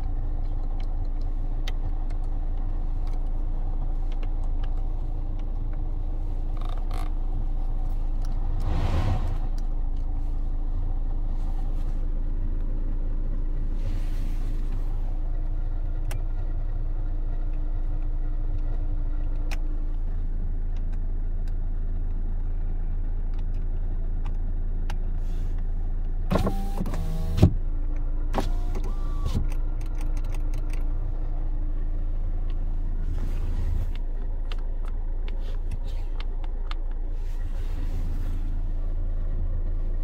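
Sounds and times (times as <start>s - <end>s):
car cabin hum: 0.0s - 21.4s, 23.9s - 40.0s
power window motor: 26.3s - 27.6s, 28.4s - 29.5s.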